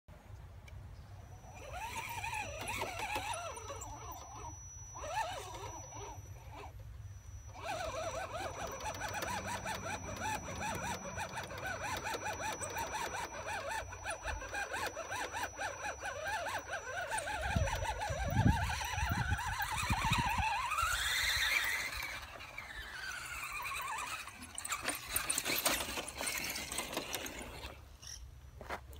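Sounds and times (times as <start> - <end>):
electric motor and gears whining: 1.1 - 28.3.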